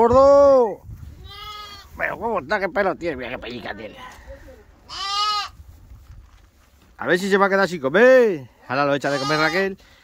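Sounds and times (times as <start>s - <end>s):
sheep bleating: 1.2s - 2.0s, 4.9s - 5.6s, 8.9s - 9.7s.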